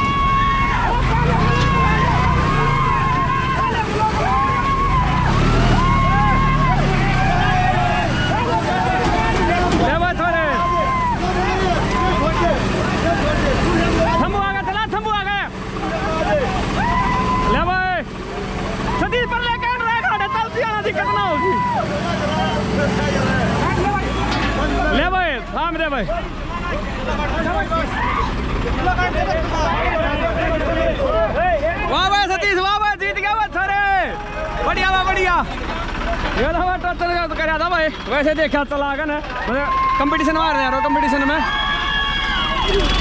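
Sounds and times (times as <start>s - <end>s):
people shouting: 0.0s - 25.2s, 26.1s - 36.2s, 39.2s - 43.0s
diesel tractor engines under load: 0.0s - 43.0s.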